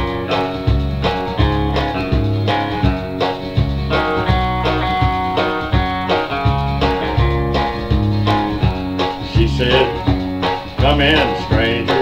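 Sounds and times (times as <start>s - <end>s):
country electric guitar playing: 0.0s - 12.0s.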